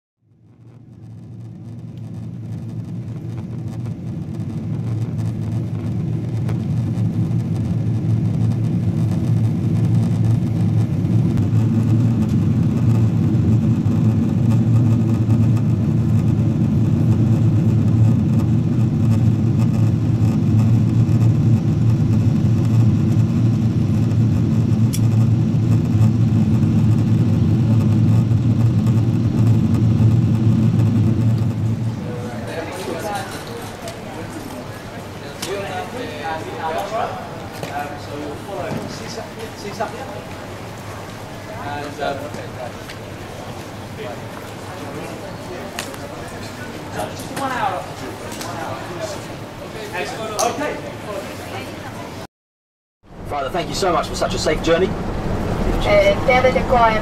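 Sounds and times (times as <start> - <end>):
jet engine cabin rumble: 0.2 - 52.2, 53.1 - 57.0.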